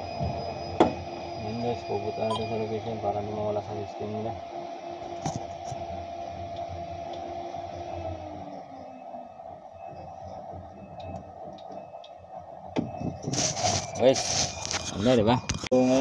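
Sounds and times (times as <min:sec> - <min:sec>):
electric lift truck humming: 0:00.0 - 0:13.7.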